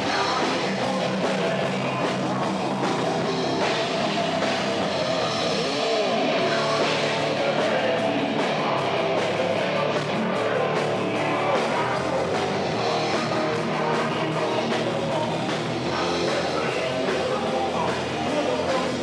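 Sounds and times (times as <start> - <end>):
heavy metal band playing live: 0.0 - 19.0.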